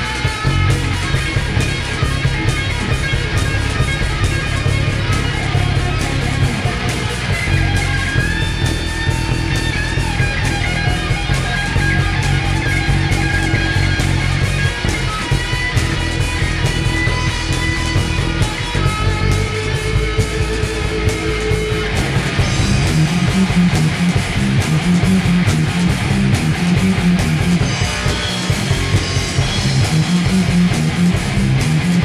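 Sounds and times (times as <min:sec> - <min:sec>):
distorted electric guitar lead: 0:00.0 - 0:32.0
heavy bass: 0:00.0 - 0:32.0
pounding drums: 0:00.0 - 0:32.0.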